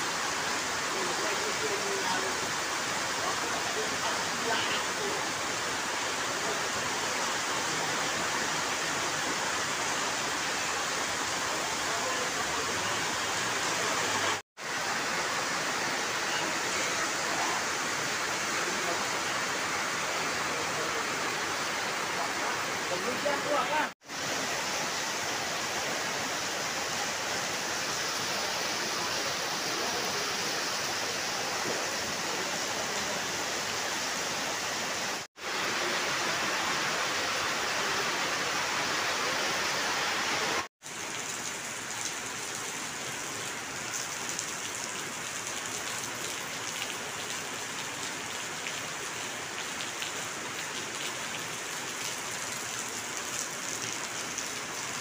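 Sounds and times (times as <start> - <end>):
heavy rain on wet paving: 0.0 - 55.0.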